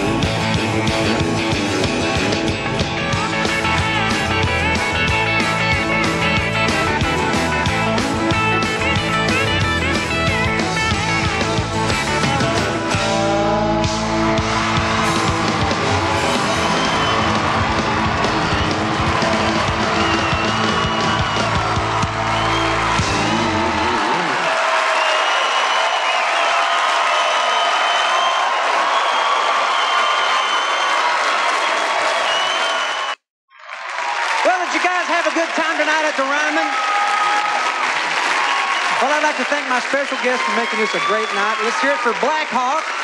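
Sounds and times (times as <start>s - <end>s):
country band playing: 0.0s - 24.3s, 38.9s - 42.8s
crowd cheering and applauding: 0.0s - 43.0s.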